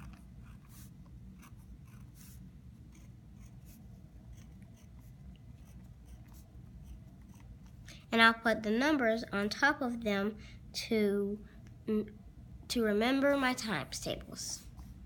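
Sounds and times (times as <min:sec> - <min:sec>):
pen scratching on paper: 0:00.0 - 0:07.8.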